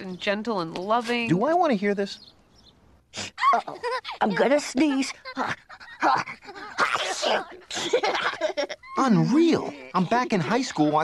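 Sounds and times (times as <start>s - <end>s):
cartoon character sneezing: 6.8s - 7.6s.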